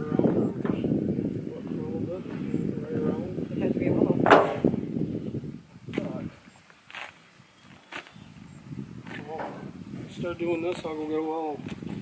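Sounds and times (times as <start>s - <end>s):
people talking indistinctly: 0.0s - 4.9s, 9.0s - 11.6s.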